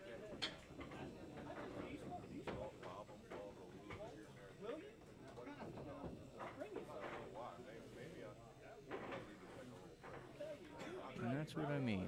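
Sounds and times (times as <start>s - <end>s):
background chatter in a bar: 0.0s - 12.0s.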